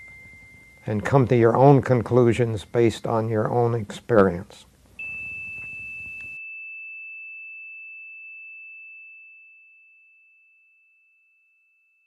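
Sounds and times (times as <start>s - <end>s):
high chime tone ringing: 0.0s - 3.7s, 5.0s - 10.2s
faint room hiss: 0.0s - 6.4s.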